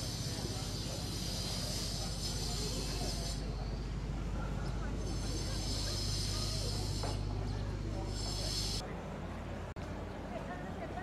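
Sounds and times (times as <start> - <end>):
high hiss: 0.0 - 4.2, 4.9 - 8.8
steady low hum: 0.0 - 9.8
faint indistinct voices: 0.0 - 11.0.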